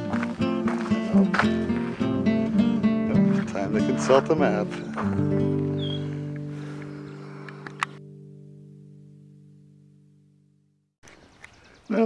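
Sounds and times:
acoustic guitar chord ringing: 0:00.0 - 0:10.8
sharp click: 0:07.5 - 0:08.0.

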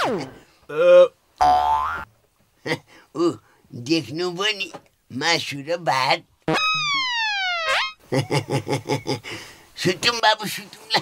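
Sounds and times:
comic boing effect: 0:01.4 - 0:02.1, 0:06.5 - 0:08.0.

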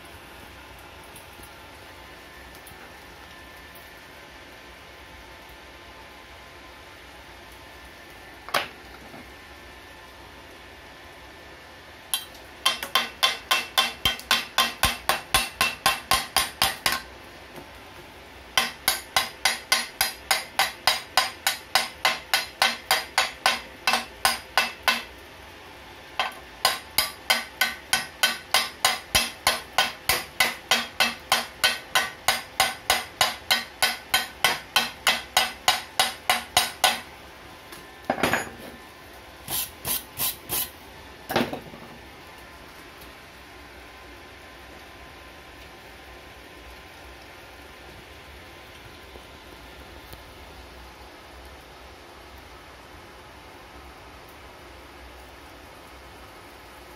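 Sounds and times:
hammer striking steel: 0:12.2 - 0:17.0, 0:18.6 - 0:25.1, 0:26.2 - 0:37.0.

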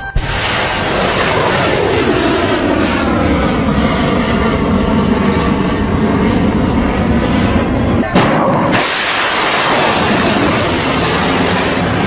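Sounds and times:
rocket motor roaring: 0:00.1 - 0:12.0.

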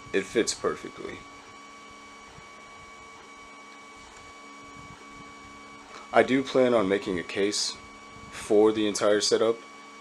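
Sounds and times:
electrical hum: 0:00.0 - 0:10.0
faint high whine: 0:00.0 - 0:10.0.

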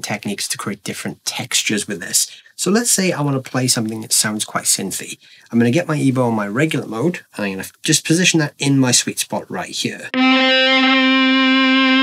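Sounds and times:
sustained electric guitar note: 0:10.1 - 0:12.0.

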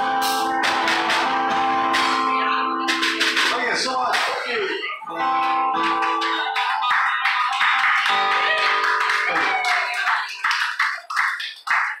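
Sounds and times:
people clapping: 0:00.6 - 0:12.0.

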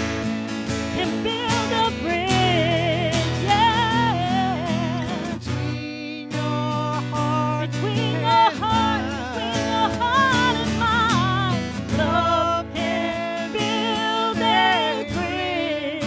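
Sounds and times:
acoustic guitar: 0:00.0 - 0:16.0
woman singing a slow ballad: 0:00.9 - 0:16.0.

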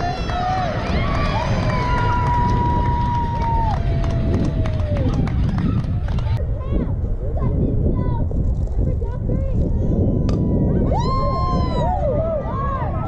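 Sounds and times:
spectators shouting and cheering: 0:00.0 - 0:06.4, 0:10.4 - 0:13.0
wind rumble on microphone: 0:00.0 - 0:13.0.

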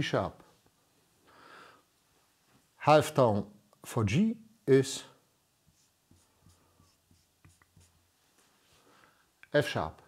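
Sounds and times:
marker writing on flip chart: 0:05.7 - 0:08.1.

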